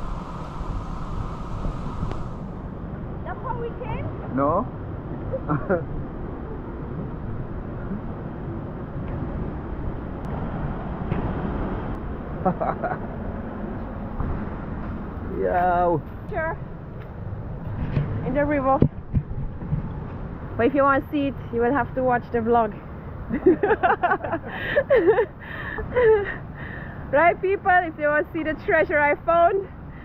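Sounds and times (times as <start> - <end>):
rushing outdoor background noise: 0.0 - 30.0.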